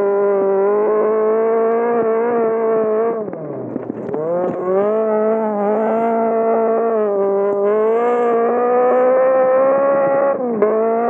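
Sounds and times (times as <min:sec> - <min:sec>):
rally car engine revving: 0:00.0 - 0:11.0.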